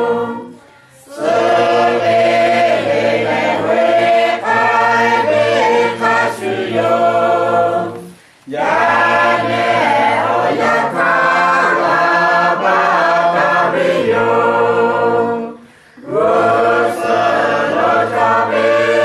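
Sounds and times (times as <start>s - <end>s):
group of voices singing: 0.0s - 19.0s.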